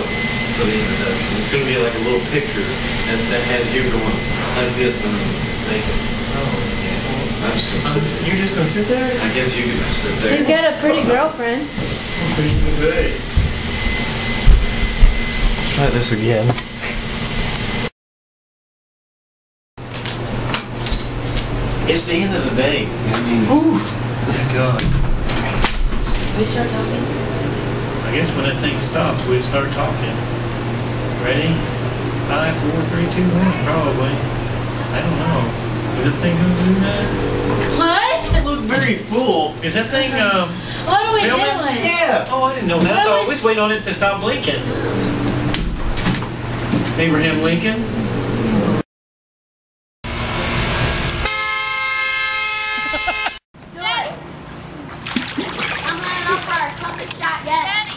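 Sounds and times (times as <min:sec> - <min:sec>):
background hum and hiss: 0:00.0 - 0:17.6, 0:19.8 - 0:48.8, 0:53.0 - 0:57.9
thin high whine: 0:00.0 - 0:17.9, 0:26.3 - 0:45.6, 0:50.1 - 0:53.4.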